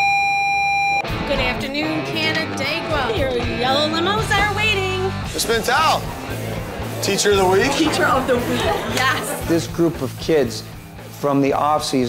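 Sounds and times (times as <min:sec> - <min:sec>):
electronic school bell tone: 0:00.0 - 0:01.0
music: 0:01.0 - 0:12.0
voices: 0:01.4 - 0:10.6.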